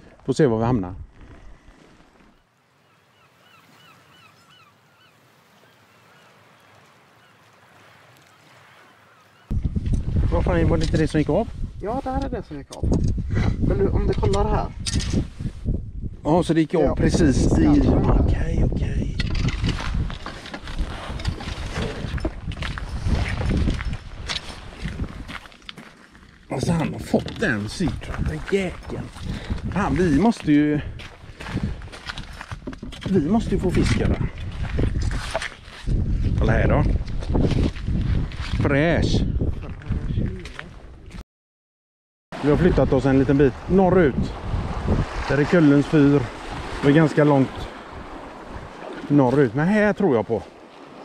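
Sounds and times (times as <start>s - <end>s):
faint birds calling: 2.3s - 9.6s
low wind rumble: 9.5s - 25.4s, 26.6s - 41.1s, 42.5s - 48.9s
fishing gear clicking and rustling: 19.2s - 29.0s, 31.9s - 33.1s, 33.7s - 36.0s.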